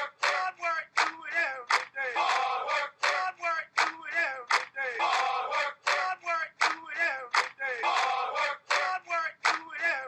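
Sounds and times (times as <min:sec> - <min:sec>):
voices shouting a chant: 0:00.0 - 0:10.0.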